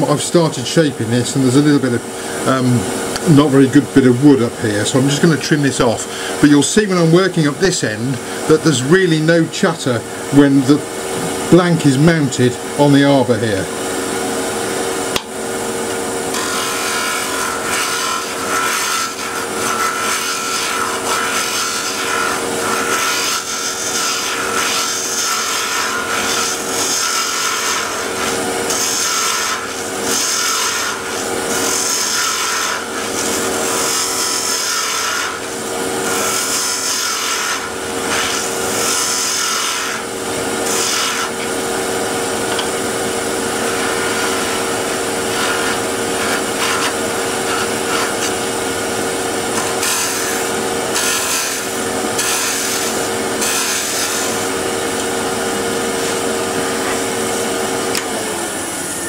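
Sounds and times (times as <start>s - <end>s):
wood lathe humming: 0.0s - 59.0s
turning tool hissing on wood: 16.3s - 41.6s, 43.5s - 48.5s, 49.6s - 54.6s.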